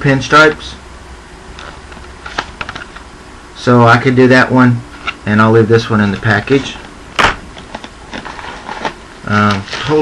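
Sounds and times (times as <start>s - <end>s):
packaging rustling: 7.5s - 10.0s.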